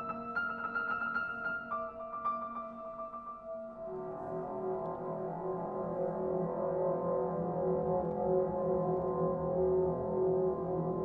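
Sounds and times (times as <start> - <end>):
piano strings droning: 0.0 - 11.0.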